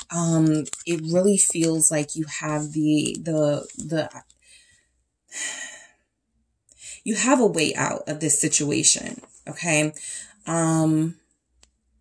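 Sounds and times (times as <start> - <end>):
person speaking: 0.0 - 4.2.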